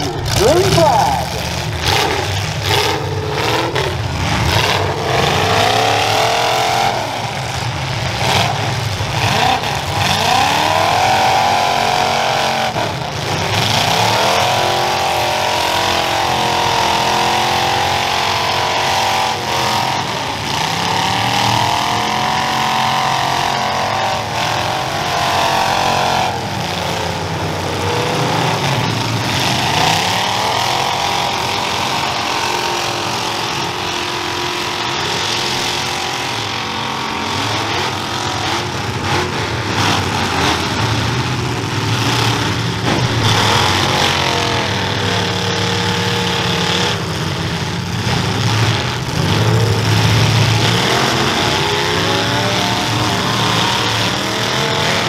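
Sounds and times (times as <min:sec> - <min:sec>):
car engines revving hard: 0:00.0 - 0:55.0.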